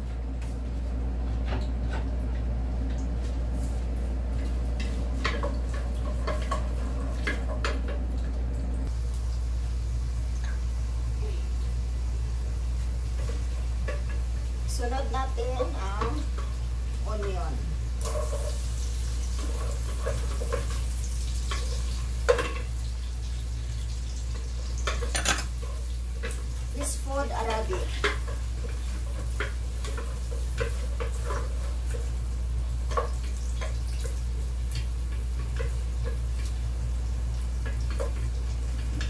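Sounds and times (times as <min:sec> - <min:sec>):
steady low hum: 0:00.0 - 0:19.2
onion and garlic frying in oil: 0:00.0 - 0:39.0
wooden spoon scraping a pot: 0:18.0 - 0:18.7.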